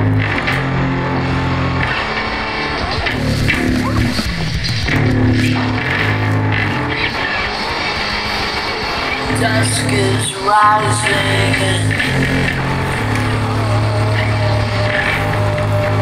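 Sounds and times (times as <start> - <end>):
electric guitar low notes: 0.0 - 16.0.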